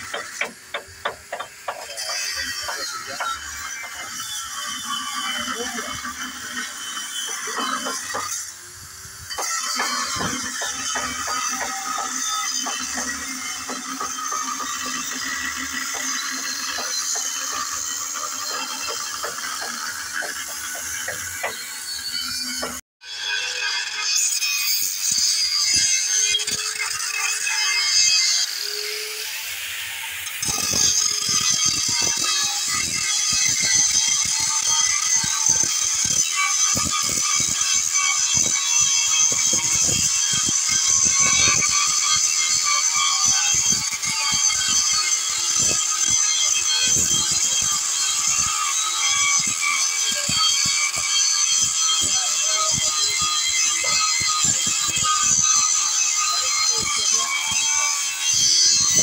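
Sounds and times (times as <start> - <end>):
angle grinder grinding metal: 0.0 - 59.0.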